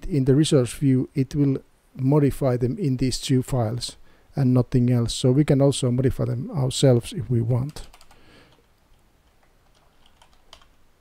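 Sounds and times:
typing on computer keyboard: 7.6 - 10.8.

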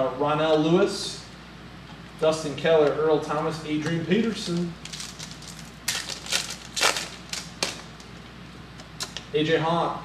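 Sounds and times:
foil wrapper tearing and crinkling: 4.5 - 7.8.

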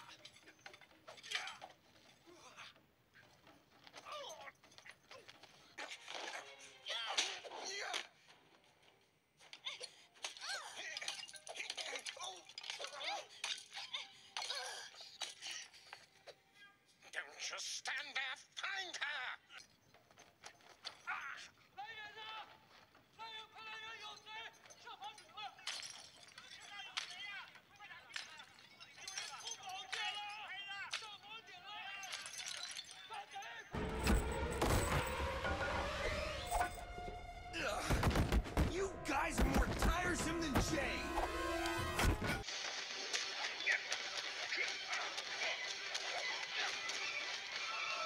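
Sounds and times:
background music: 0.0 - 48.0
sharp hits and clinks: 32.0 - 37.3
dramatic music with sharp hits: 33.8 - 42.4
shattering effect: 33.8 - 42.4
person speaking: 38.7 - 41.4.

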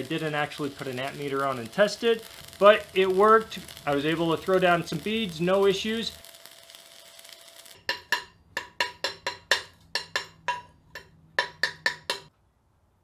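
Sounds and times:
hammer striking metal: 7.8 - 12.3.

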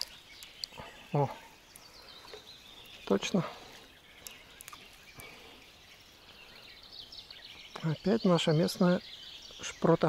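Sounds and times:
distant bird twittering: 0.0 - 10.0.

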